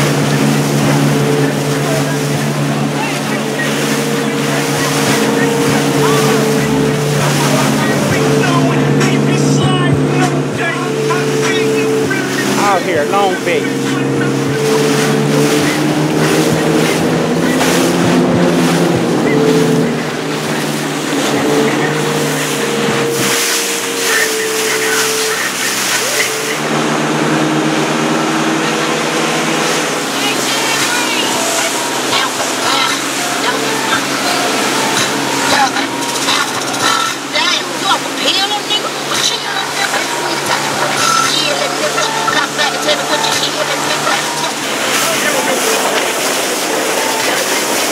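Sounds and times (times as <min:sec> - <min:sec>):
motorboat engine running: 0:00.0 - 0:47.9
water splashing against hull: 0:00.0 - 0:47.9.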